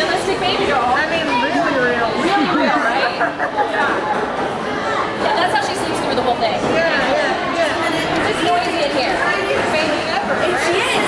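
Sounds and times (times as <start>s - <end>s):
overlapping conversation: 0.0s - 11.0s.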